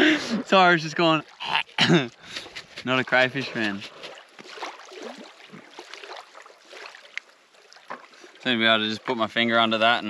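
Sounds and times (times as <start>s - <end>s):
small waves washing on sand: 2.1s - 8.4s.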